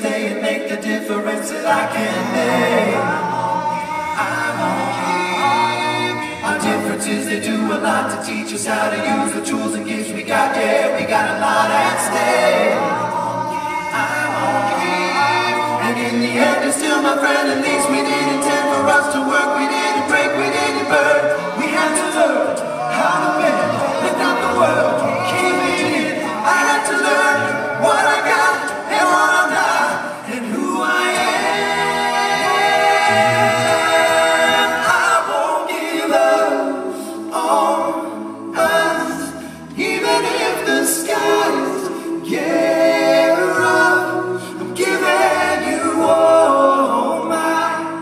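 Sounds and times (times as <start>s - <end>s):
male a cappella group singing: 0.0s - 48.0s.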